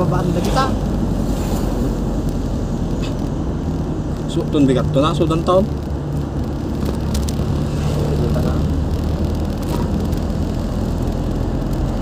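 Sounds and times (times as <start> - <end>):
road noise: 0.0 - 12.0
vehicle engine hum: 0.0 - 12.0.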